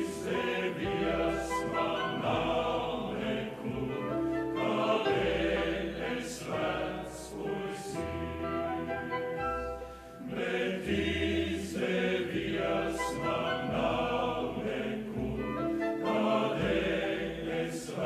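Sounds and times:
choir singing: 0:00.0 - 0:09.5, 0:10.2 - 0:18.0
grand piano: 0:00.0 - 0:18.0
symphony orchestra: 0:00.0 - 0:18.0.

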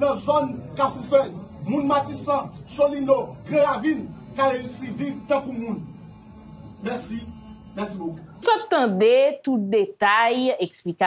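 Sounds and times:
man speaking: 0:00.0 - 0:06.0
electrical mains hum: 0:00.0 - 0:10.4.

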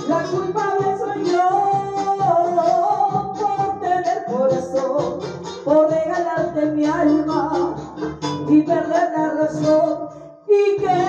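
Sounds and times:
woman singing long notes: 0:00.0 - 0:05.1
band accompaniment: 0:00.0 - 0:09.0.

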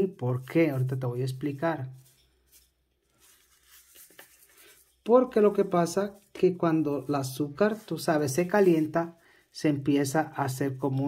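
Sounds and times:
faint soft rustling: 0:00.0 - 0:11.0.

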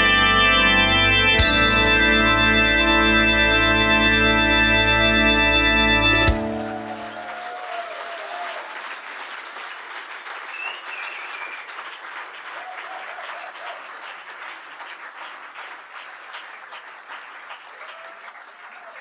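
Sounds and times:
held music chord: 0:00.0 - 0:07.0
audience applauding: 0:05.6 - 0:19.0
audience cheering: 0:06.2 - 0:09.3, 0:10.5 - 0:14.2, 0:17.6 - 0:19.0.

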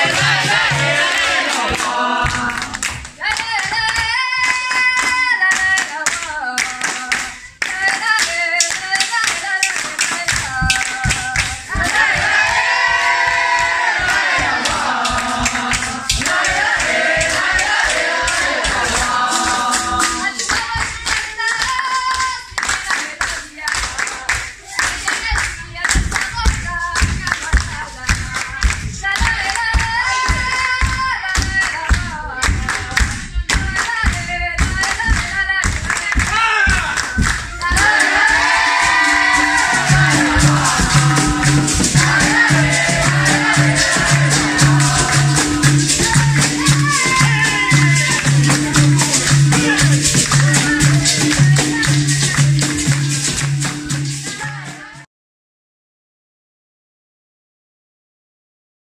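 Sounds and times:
low hand drum beats: 0:00.0 - 0:02.8, 0:10.4 - 0:20.9, 0:26.0 - 0:55.0
berimbaus and pandeiro: 0:00.0 - 0:04.4, 0:09.8 - 0:21.8, 0:25.6 - 0:55.0
group singing: 0:00.0 - 0:55.0
hand clapping: 0:00.0 - 0:55.0.

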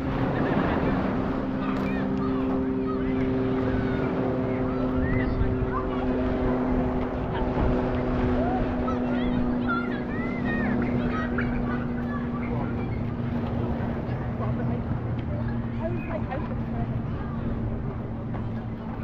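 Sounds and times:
low engine drone: 0:00.0 - 0:19.0
scattered crowd voices: 0:00.0 - 0:19.0.

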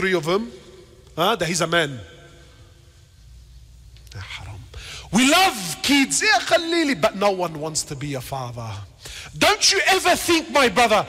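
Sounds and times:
low steady hum: 0:00.0 - 0:11.0
man breathing in: 0:09.0 - 0:09.3.

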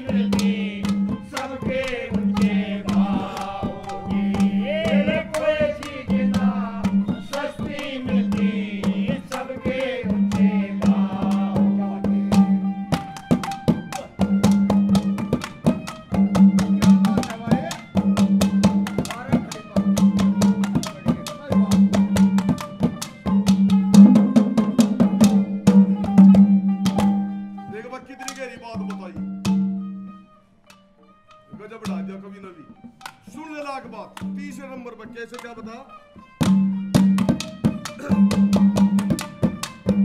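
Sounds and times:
quick drum strokes: 0:00.2 - 0:27.3.

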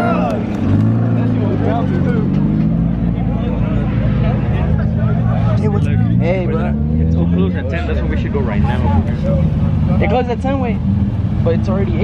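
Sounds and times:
car engine running: 0:00.0 - 0:12.0
crowd voices: 0:00.0 - 0:12.0.

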